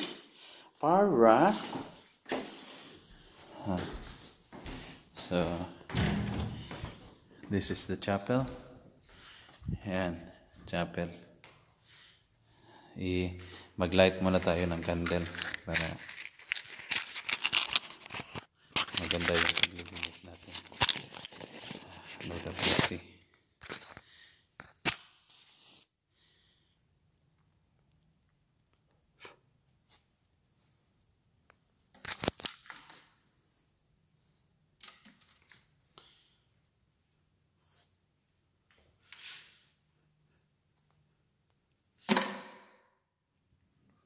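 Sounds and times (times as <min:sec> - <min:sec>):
rustling handling noise: 0:14.0 - 0:24.0.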